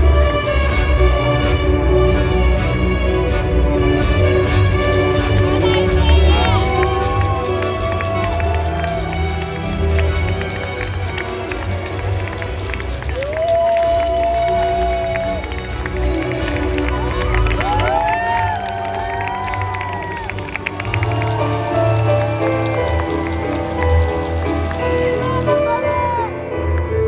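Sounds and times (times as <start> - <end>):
ballroom dance music: 0.0 - 27.0
spectators cheering: 5.5 - 26.4.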